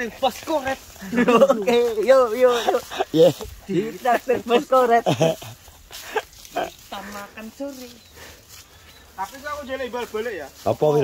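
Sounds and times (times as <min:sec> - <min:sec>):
men laughing: 0:00.0 - 0:07.6.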